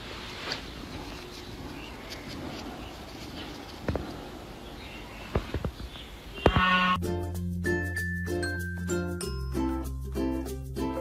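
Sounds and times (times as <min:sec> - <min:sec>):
outdoor background noise: 0:00.0 - 0:07.0
music with held tones: 0:06.7 - 0:11.0.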